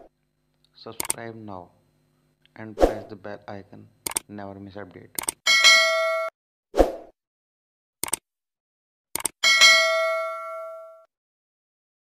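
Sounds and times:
quick clicks: 1.0 - 1.2, 4.0 - 4.3, 5.2 - 5.4, 8.0 - 8.2, 9.2 - 9.4
bell-like ding: 5.5 - 6.3, 9.4 - 11.1.

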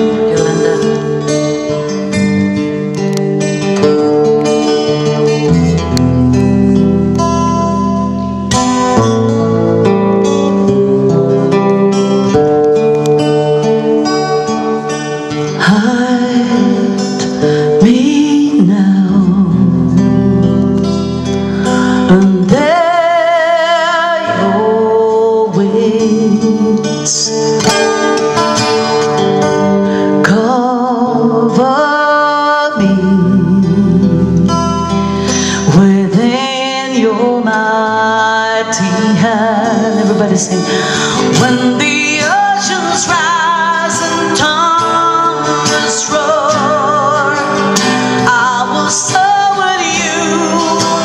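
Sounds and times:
woman singing: 0.0 - 3.1, 8.0 - 20.7, 21.6 - 51.0
strummed acoustic guitar: 0.0 - 51.0.

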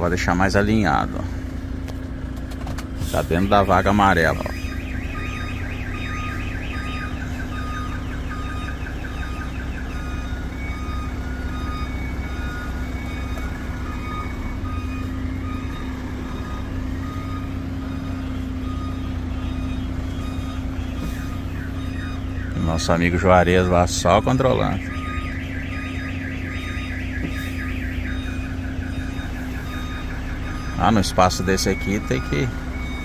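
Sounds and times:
diesel truck engine idling: 0.0 - 33.0.

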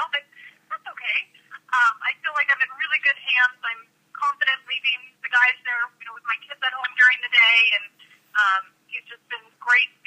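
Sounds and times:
woman speaking over telephone: 0.0 - 10.0.

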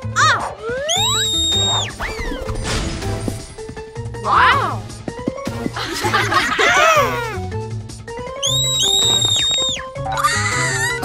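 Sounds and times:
cartoon background music: 0.0 - 11.0
high whistle-like tones: 0.9 - 2.4, 8.4 - 10.0.

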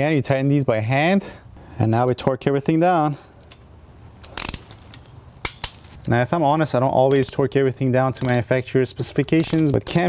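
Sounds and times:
ratchet clicks: 4.2 - 6.0, 7.1 - 7.4, 8.1 - 8.5, 9.3 - 10.0.

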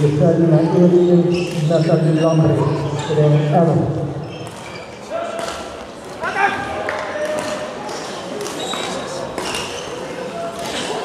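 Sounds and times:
voices echoing in hall: 0.0 - 11.0.

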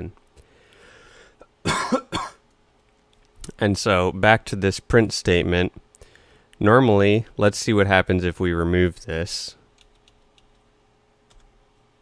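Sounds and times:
man coughing: 1.6 - 2.4.

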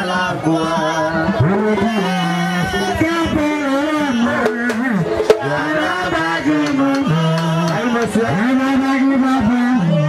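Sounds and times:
voices singing ceremonial song: 0.0 - 10.0
drumming: 4.3 - 8.2.

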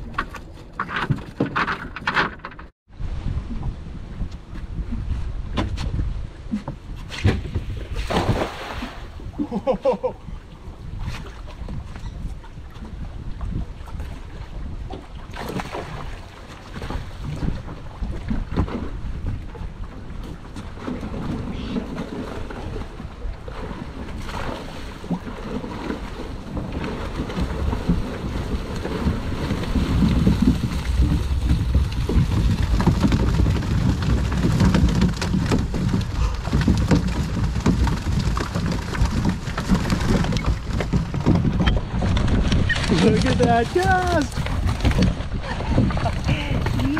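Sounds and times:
wind on microphone: 2.6 - 46.9
water splashing: 7.3 - 10.1, 15.0 - 18.9, 20.7 - 46.9.

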